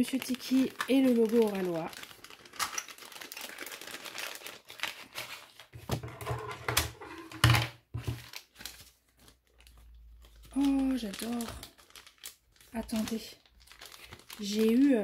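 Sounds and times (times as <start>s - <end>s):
plastic pouch crinkling: 0.0s - 5.8s, 7.9s - 15.0s.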